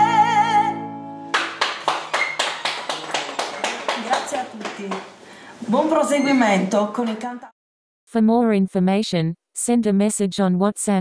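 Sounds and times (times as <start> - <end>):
hand clapping: 1.3 - 5.2.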